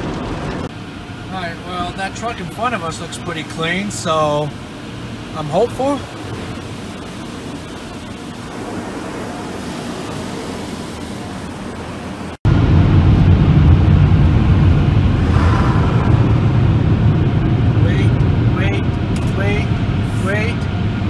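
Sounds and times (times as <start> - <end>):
car wash hissing: 0.0 - 12.4
van driving rumble: 0.0 - 21.0.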